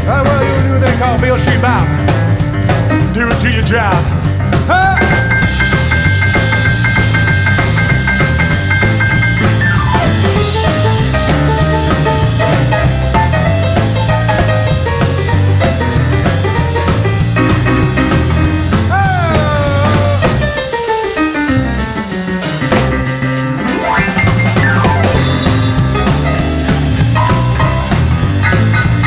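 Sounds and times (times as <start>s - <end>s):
rock and roll band playing: 0.0s - 29.0s.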